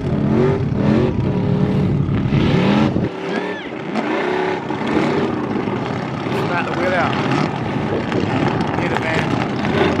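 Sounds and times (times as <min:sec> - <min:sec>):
car engine at high revs: 0:00.0 - 0:10.0.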